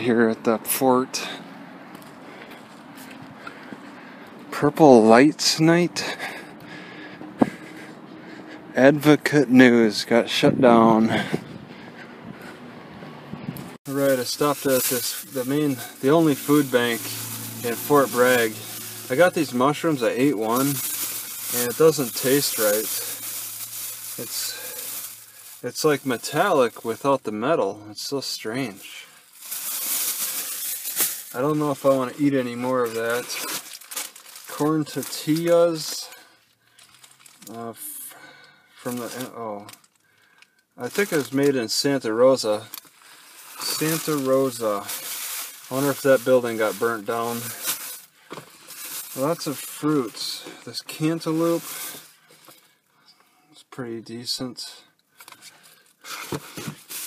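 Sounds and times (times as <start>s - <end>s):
plastic bag rustling: 13.9s - 27.3s, 28.6s - 36.0s, 36.7s - 37.6s, 40.8s - 52.5s, 55.4s - 57.0s.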